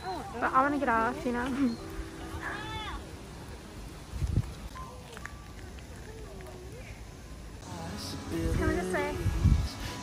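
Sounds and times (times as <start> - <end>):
wind rumble on microphone: 4.0 - 4.7, 8.3 - 10.0.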